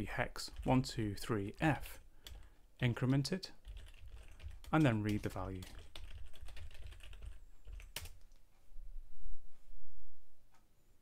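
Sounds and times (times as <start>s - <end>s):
typing on a keyboard: 1.5s - 8.4s.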